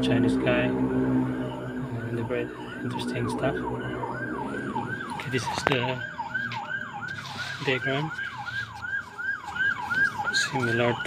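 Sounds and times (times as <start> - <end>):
siren yelping: 0.0 - 11.0.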